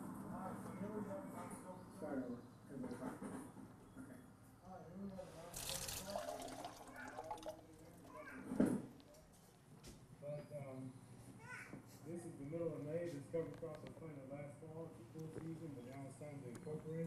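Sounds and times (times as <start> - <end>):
faint voices: 0.3 - 9.5.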